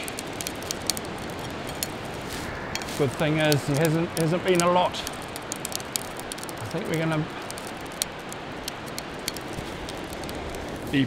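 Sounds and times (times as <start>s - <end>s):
light clicks: 0.0s - 10.9s
surf washing on beach: 0.0s - 11.0s
wind: 0.0s - 11.0s.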